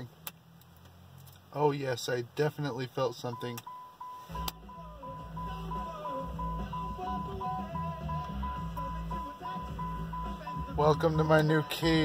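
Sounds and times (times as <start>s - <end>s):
car radio music: 0.0s - 12.0s
car warning chime beeping: 2.6s - 12.0s.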